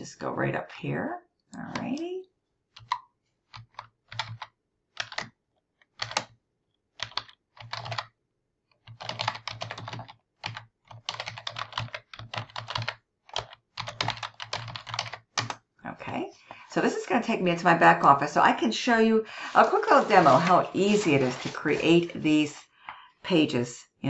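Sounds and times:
typing on computer keyboard: 2.8 - 6.4, 7.0 - 8.1, 8.7 - 15.6.

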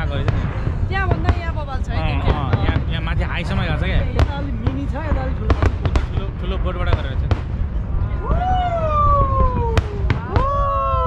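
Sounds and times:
firework crack: 0.0 - 11.0
low rumble of fireworks: 0.0 - 11.0
whoop-like call: 8.2 - 11.0.

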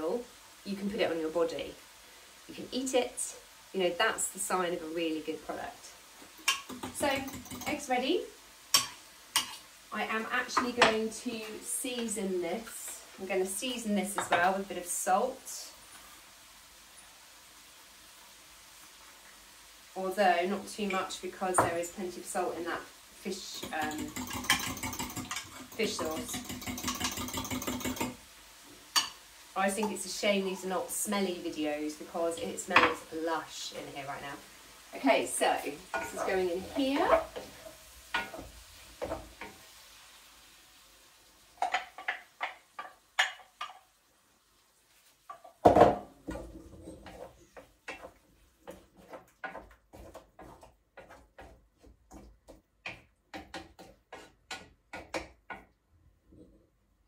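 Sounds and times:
faint hiss: 0.0 - 24.2, 27.8 - 48.7
utensils clinking against pan: 6.4 - 7.8, 23.5 - 28.2
fork whisking eggs in glass jug: 23.6 - 28.2, 47.9 - 55.6.

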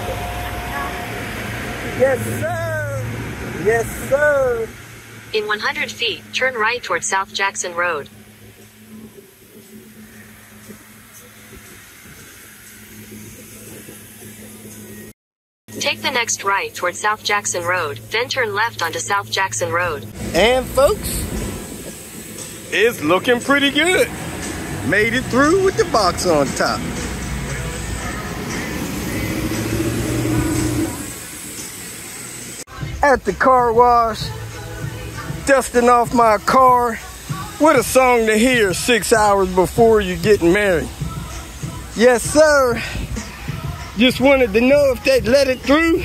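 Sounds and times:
traffic noise: 0.0 - 15.1, 15.7 - 46.0
engine and road noise hum: 0.0 - 46.0
faint hiss: 20.2 - 46.0.

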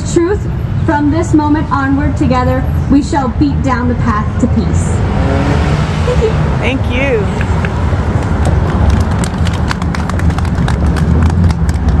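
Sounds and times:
group hand clapping: 7.4 - 12.0.

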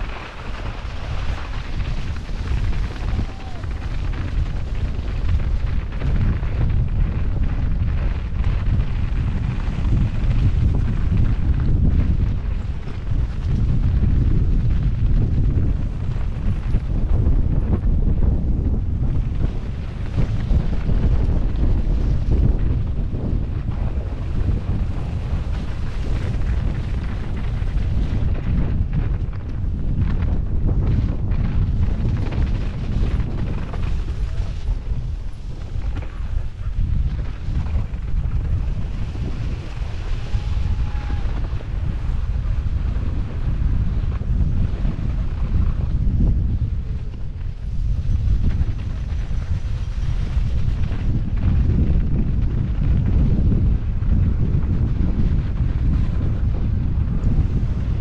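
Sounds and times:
mountain bike riding noise: 0.0 - 58.0
wind buffeting microphone: 0.0 - 58.0.

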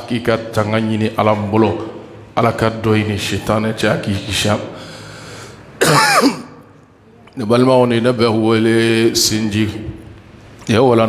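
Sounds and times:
man clearing his throat: 5.8 - 6.6.

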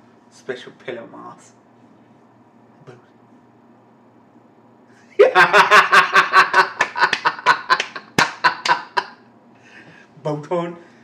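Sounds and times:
man laughing hard: 5.1 - 9.2.

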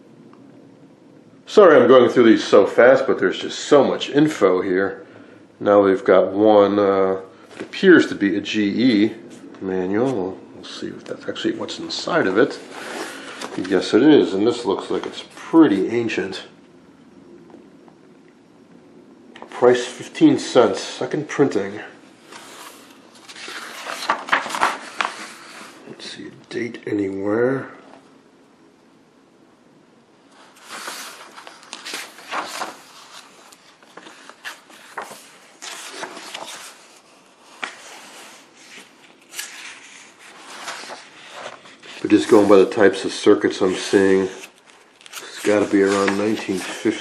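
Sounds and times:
paper page turning: 11.0 - 15.8, 22.2 - 25.8, 30.3 - 47.0.

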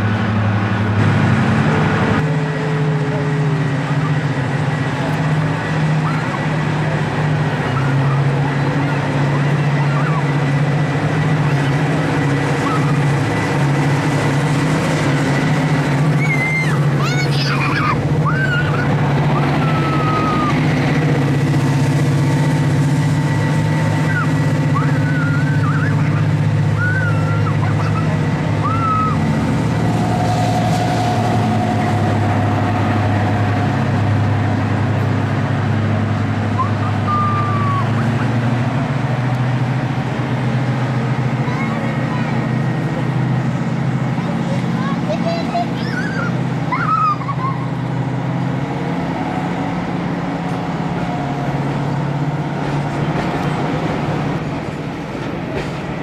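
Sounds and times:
diesel locomotive engine hum: 0.0 - 56.0.

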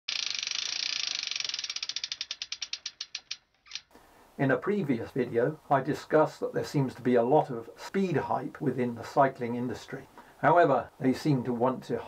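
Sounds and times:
bicycle freehub ticking: 0.1 - 3.9.

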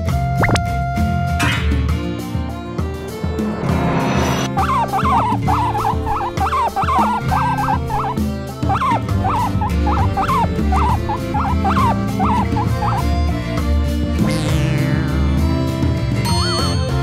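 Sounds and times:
background music with steady beat: 0.0 - 17.0
guinea pig squeaks: 4.6 - 13.1.

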